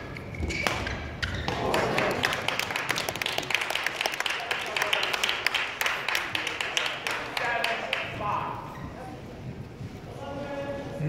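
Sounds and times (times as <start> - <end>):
spectators clapping: 1.5 - 8.2.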